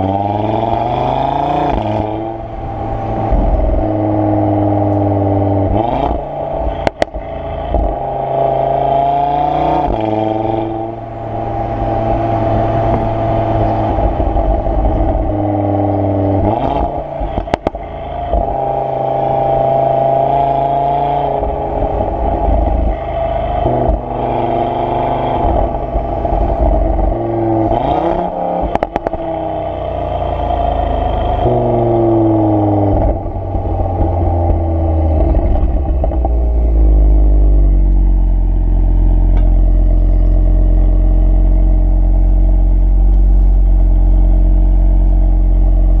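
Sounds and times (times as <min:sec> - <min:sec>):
car engine revving: 0:00.0 - 0:46.0
exhaust crackles and pops: 0:04.8 - 0:08.1, 0:13.9 - 0:18.8, 0:28.6 - 0:29.3, 0:31.0 - 0:46.0.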